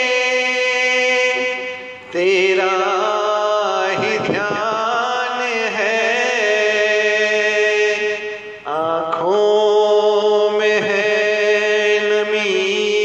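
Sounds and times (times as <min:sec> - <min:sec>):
voice chanting long notes: 0:00.0 - 0:13.0.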